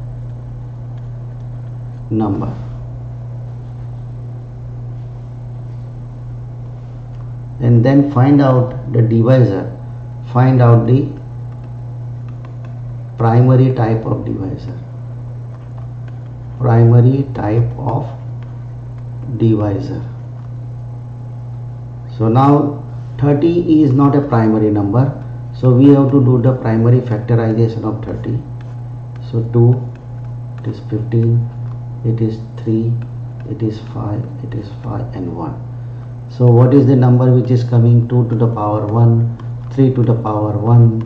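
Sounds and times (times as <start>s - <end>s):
microphone hum: 0.0s - 41.0s
person speaking: 1.5s - 3.5s, 4.8s - 20.9s, 21.5s - 41.0s.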